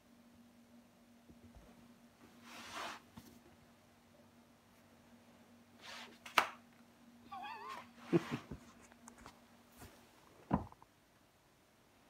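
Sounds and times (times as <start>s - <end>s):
person laughing: 7.3s - 8.6s.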